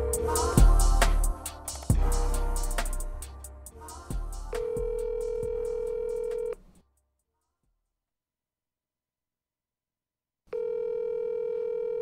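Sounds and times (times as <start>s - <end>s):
telephone ringback tone: 4.6s - 6.6s, 10.5s - 12.0s.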